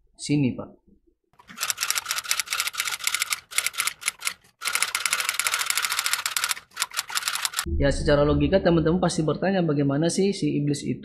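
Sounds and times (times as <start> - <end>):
rapid keyboard typing clicks: 1.4 - 7.7.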